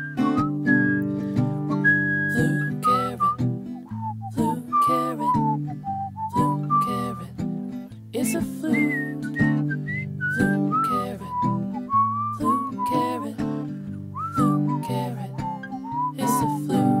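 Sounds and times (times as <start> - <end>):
carrot flute melody: 0.0 - 7.3, 8.7 - 13.4, 14.2 - 17.0
strummed acoustic guitar: 0.0 - 17.0.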